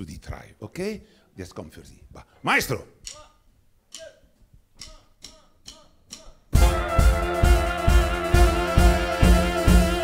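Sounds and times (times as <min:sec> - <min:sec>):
count-in beats: 0:03.0 - 0:10.0
big band playing up-tempo song: 0:06.5 - 0:10.0.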